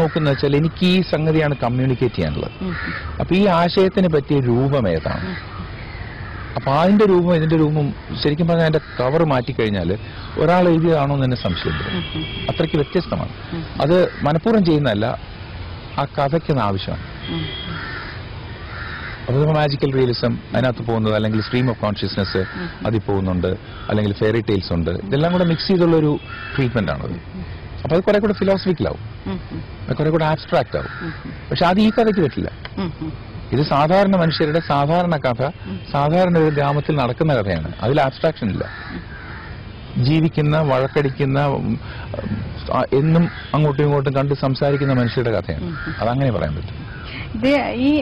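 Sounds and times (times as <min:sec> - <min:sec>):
crow cawing: 0:00.0 - 0:00.7, 0:02.7 - 0:03.2, 0:05.0 - 0:06.7, 0:08.7 - 0:09.2, 0:10.0 - 0:12.5, 0:13.4 - 0:14.4, 0:17.0 - 0:19.3, 0:21.3 - 0:22.9, 0:23.6 - 0:24.2, 0:25.2 - 0:27.6, 0:30.7 - 0:32.5, 0:34.2 - 0:35.0, 0:36.2 - 0:36.9, 0:38.5 - 0:39.6, 0:40.7 - 0:41.3, 0:41.9 - 0:43.8, 0:44.5 - 0:47.1
bird calling: 0:00.0 - 0:01.1, 0:02.1 - 0:03.2, 0:04.5 - 0:14.4, 0:17.0 - 0:19.3, 0:21.2 - 0:24.2, 0:25.1 - 0:27.6, 0:28.3 - 0:48.0
man speaking: 0:00.0 - 0:02.6, 0:03.2 - 0:05.4, 0:06.6 - 0:15.2, 0:16.0 - 0:17.0, 0:19.3 - 0:29.0, 0:29.9 - 0:30.9, 0:31.5 - 0:32.6, 0:33.5 - 0:38.7, 0:40.0 - 0:46.8.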